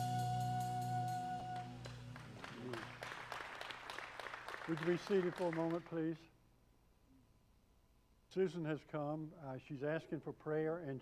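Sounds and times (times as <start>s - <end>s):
light clapping: 1.5s - 6.0s.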